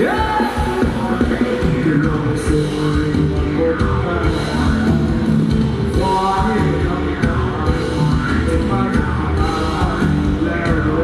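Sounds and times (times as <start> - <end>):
band playing dance song: 0.0 - 11.0
drum kit beat: 0.0 - 11.0
electric guitar: 0.0 - 11.0.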